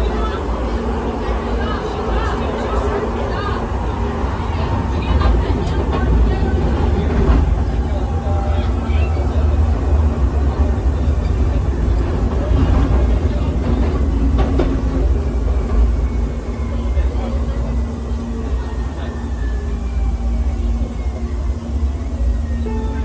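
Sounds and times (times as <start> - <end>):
passenger chatter: 0.0 - 23.0
train rumbling on rails: 0.0 - 23.0.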